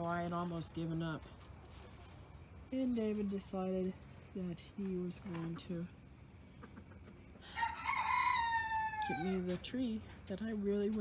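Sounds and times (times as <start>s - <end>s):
rooster crowing: 7.4s - 9.4s.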